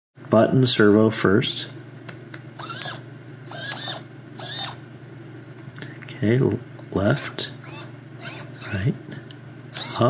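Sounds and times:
micro servo motors whining: 2.6s - 4.8s, 7.6s - 8.8s, 9.7s - 10.0s.

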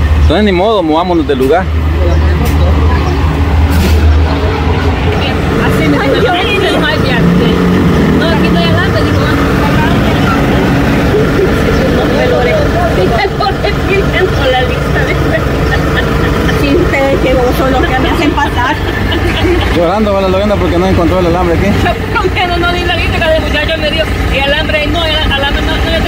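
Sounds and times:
vehicle engine rumbling: 0.0s - 26.0s
people talking: 0.2s - 3.4s, 4.3s - 26.0s.

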